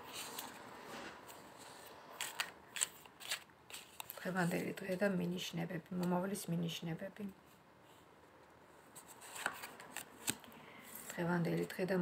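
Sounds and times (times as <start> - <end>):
cards snapping while shuffled: 9.4 - 10.5.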